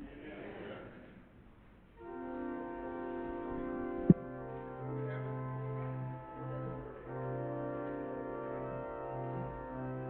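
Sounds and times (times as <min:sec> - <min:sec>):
organ playing sustained chords: 0:02.0 - 0:10.0.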